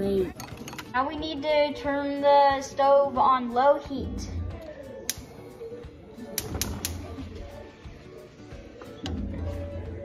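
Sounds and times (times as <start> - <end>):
background music: 0.0 - 10.0
gas stove igniter clicking: 6.4 - 7.1.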